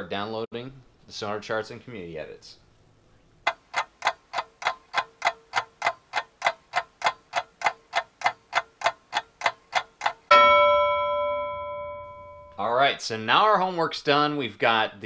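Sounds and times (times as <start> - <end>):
clock ticking: 3.5 - 10.5
bell ding: 10.3 - 12.7.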